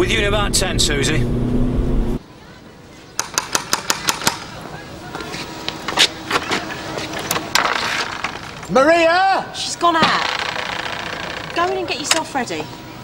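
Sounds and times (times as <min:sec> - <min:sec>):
car engine and road noise: 0:00.0 - 0:02.2.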